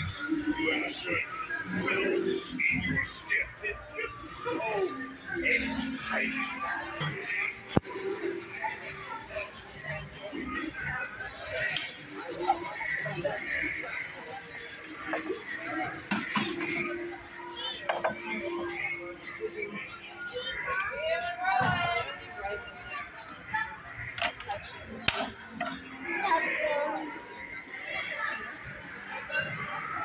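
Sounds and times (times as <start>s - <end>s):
indistinct voices: 0.0s - 30.0s.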